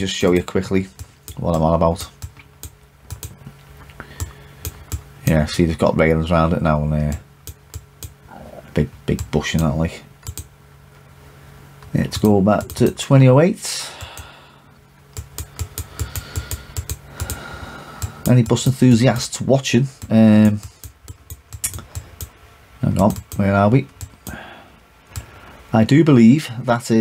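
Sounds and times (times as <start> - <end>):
faint steady hum: 0.0 - 27.0
computer keyboard typing: 0.9 - 3.4, 9.1 - 10.5, 15.1 - 19.3, 20.0 - 22.3, 23.0 - 24.4
mouse and keyboard clicks: 20.0 - 22.3.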